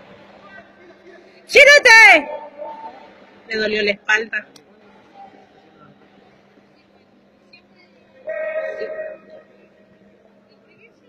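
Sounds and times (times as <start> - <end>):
low hall murmur: 0.0 - 11.0.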